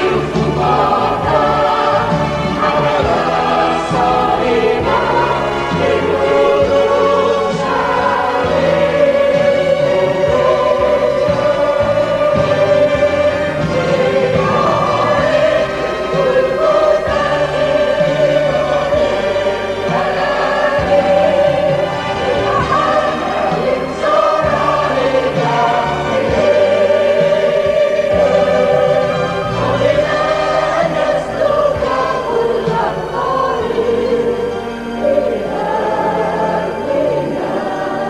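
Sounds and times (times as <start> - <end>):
mixed choir singing a hymn: 0.0 - 38.0.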